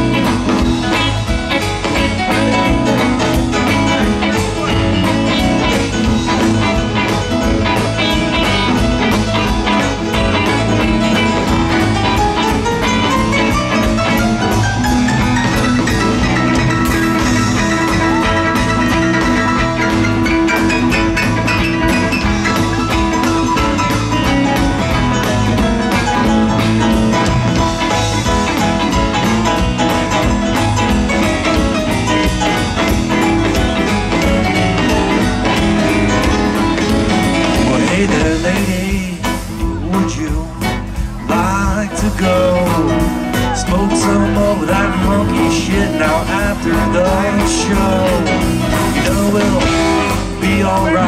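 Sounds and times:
bass guitar: 0.0s - 51.0s
drum kit: 0.0s - 51.0s
electric guitars: 0.0s - 51.0s
keyboards: 0.0s - 51.0s
rock band playing live: 0.0s - 51.0s.

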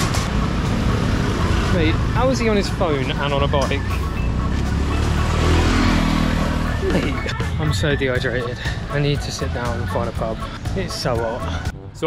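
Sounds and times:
motorbike engines rumbling: 0.0s - 11.7s.

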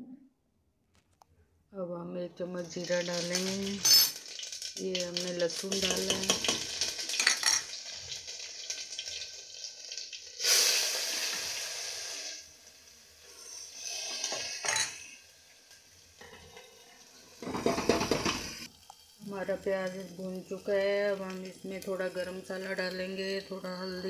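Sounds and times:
paste frying in hot oil: 2.4s - 24.0s
spoon clinking and scraping pot: 3.4s - 4.3s, 5.8s - 7.8s, 14.0s - 15.2s.

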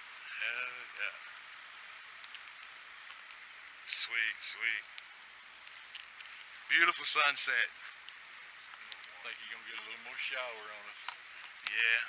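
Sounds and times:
faint steady hiss: 0.0s - 12.0s
man talking: 0.3s - 1.3s, 3.9s - 4.9s, 6.7s - 7.8s, 9.0s - 12.0s
soft ticks: 2.2s - 3.4s, 4.9s - 6.6s, 7.8s - 10.0s.

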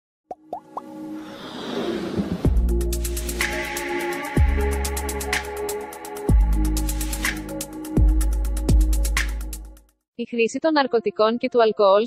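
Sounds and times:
music riser: 0.8s - 7.9s.

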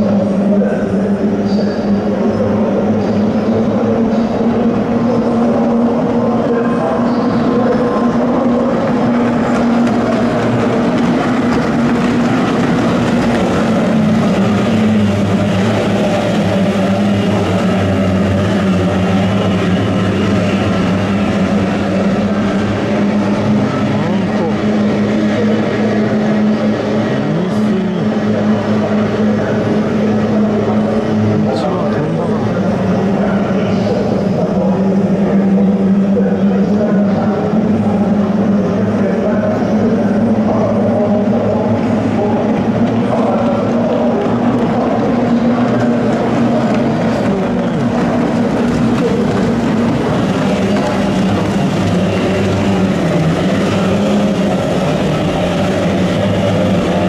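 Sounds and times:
boat outboard engines droning: 0.0s - 57.0s.

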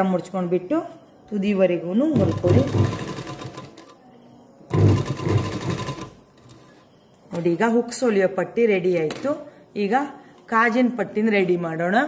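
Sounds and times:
sewing machine stitching: 2.2s - 3.9s, 4.7s - 6.2s.

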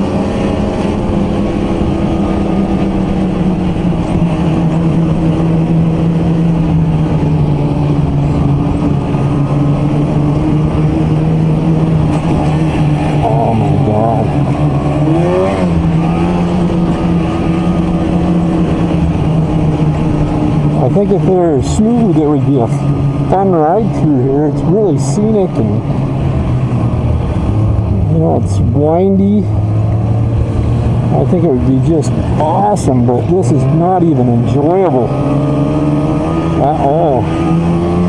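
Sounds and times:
snowmobile engine running: 0.0s - 38.0s.

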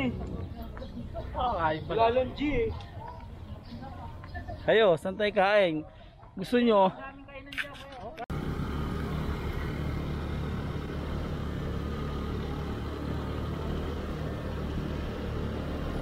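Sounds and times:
wind and road rush: 7.9s - 16.0s
motorcycle engine drone: 8.3s - 16.0s.

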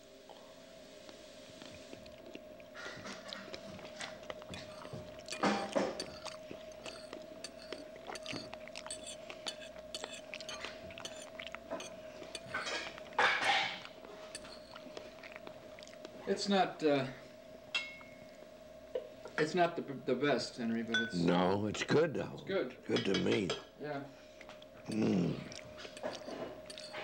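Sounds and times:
steady hum: 0.0s - 27.0s
person chewing food: 0.3s - 16.3s, 24.4s - 27.0s
cutlery clicking on plates: 4.5s - 14.7s, 22.9s - 23.6s, 25.8s - 27.0s.

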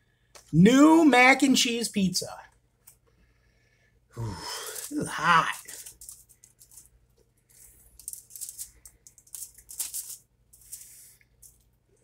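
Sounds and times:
aluminium foil crinkling: 4.5s - 11.7s.

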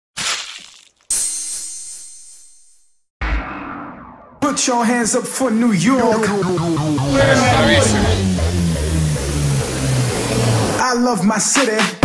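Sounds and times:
deep boom: 3.2s - 9.7s.

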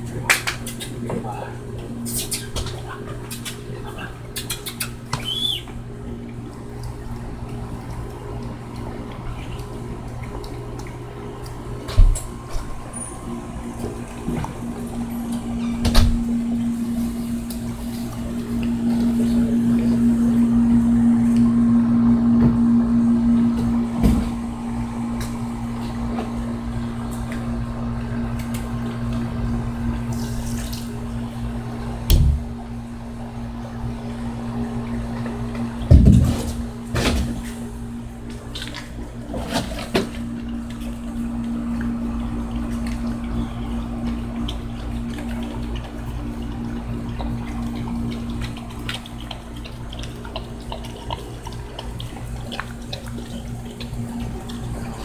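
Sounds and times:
steady mechanical hum: 0.0s - 55.0s.

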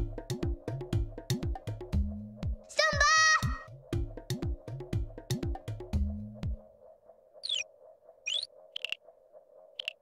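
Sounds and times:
high electronic beeps: 7.4s - 7.6s
rising electronic chirp: 7.4s - 7.7s, 8.3s - 9.0s, 9.8s - 10.0s.

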